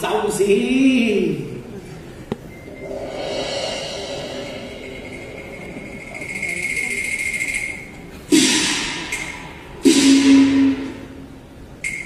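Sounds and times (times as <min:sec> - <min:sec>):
gong and cymbal crashes: 0:02.7 - 0:07.5, 0:08.3 - 0:11.2.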